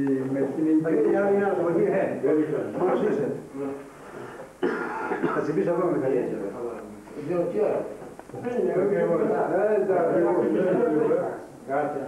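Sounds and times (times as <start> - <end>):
man clearing throat: 4.6 - 5.6.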